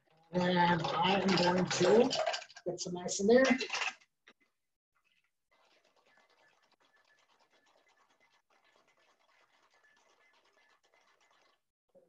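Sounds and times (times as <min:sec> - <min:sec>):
faint fast scratchy rattle: 0:00.0 - 0:04.4.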